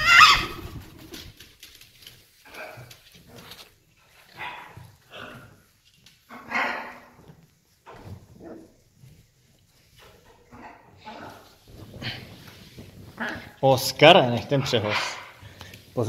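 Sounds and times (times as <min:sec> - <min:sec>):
parrots making bark-like calls: 0:00.0 - 0:00.8, 0:06.3 - 0:07.1.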